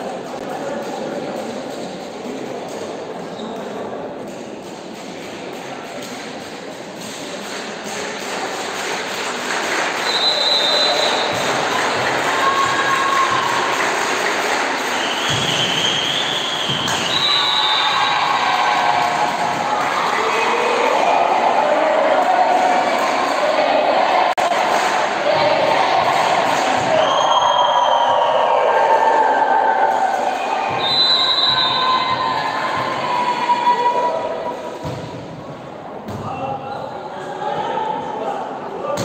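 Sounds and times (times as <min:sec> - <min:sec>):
crowd and player voices: 0:00.0 - 0:39.0
volleyball hits: 0:10.6 - 0:13.7, 0:15.0 - 0:20.1, 0:34.8 - 0:36.4.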